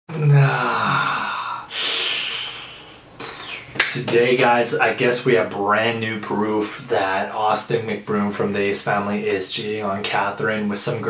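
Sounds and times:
man groaning: 0:00.1 - 0:02.8
breathy exhale: 0:00.5 - 0:03.7.

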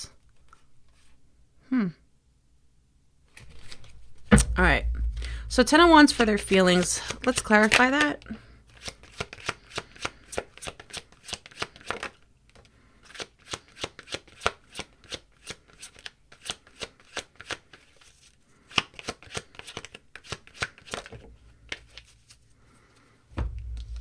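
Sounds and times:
cards being shuffled: 0:03.3 - 0:04.0, 0:06.4 - 0:22.4.

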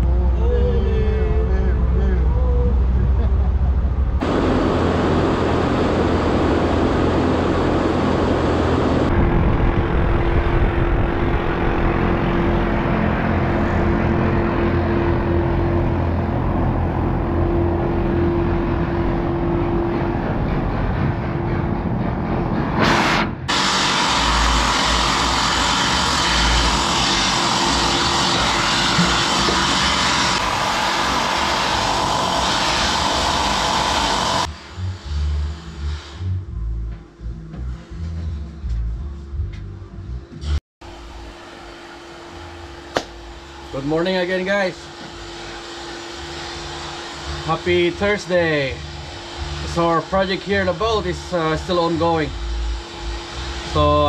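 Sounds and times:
loud machinery noise: 0:00.0 - 0:38.9, 0:40.4 - 0:54.0
droning tone: 0:00.0 - 0:54.0.

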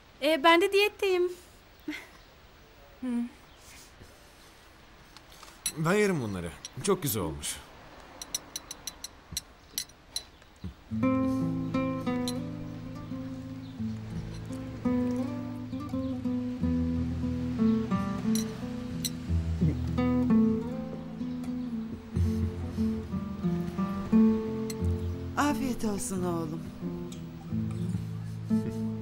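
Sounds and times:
plucked guitar melody: 0:10.9 - 0:29.0.

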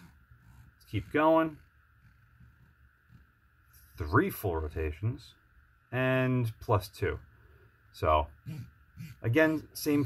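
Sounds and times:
faint low hum: 0:00.0 - 0:10.0.

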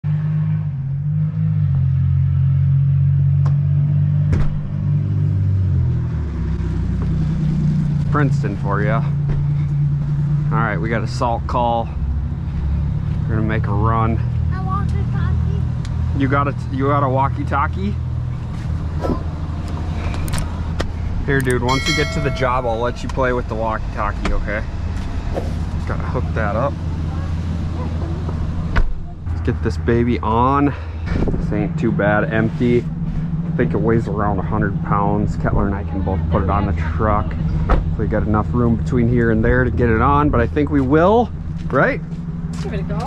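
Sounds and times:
engine idling low rumble: 0:06.8 - 0:43.0.

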